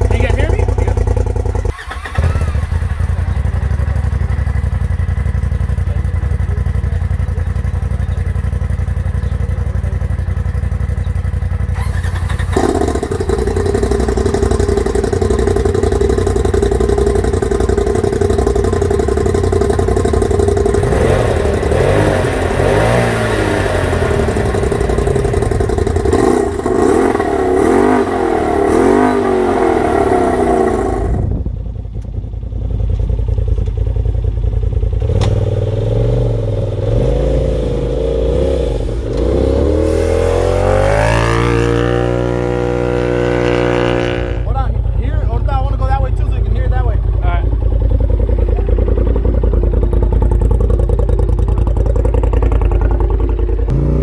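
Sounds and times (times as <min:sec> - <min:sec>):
engine idling and revving: 0:00.0 - 0:54.0.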